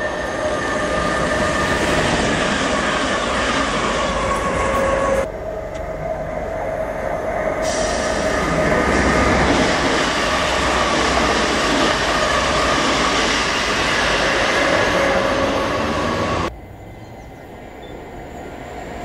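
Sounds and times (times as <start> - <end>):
electric train whine: 0.0 - 19.0
rail noise: 0.0 - 19.0
train running noise: 0.0 - 19.0.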